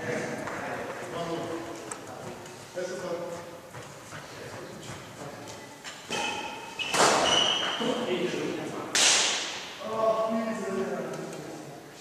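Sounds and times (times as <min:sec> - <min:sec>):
shoes squeaking on wooden floor: 0:01.7 - 0:08.0.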